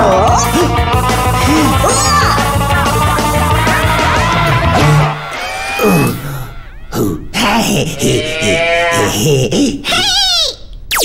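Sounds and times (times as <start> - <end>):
high-pitched cartoon voice crying: 1.7 - 2.6.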